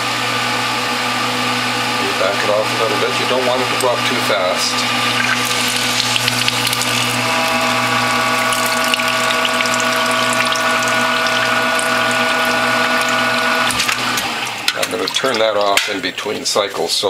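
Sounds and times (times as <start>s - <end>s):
motor whine: 0.0s - 15.6s
motor hum: 0.0s - 16.6s.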